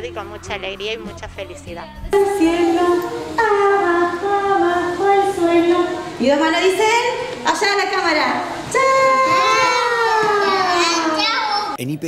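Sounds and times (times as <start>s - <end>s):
man's voice: 0.0s - 2.2s, 11.8s - 12.0s
children calling out goodbye: 8.7s - 11.8s.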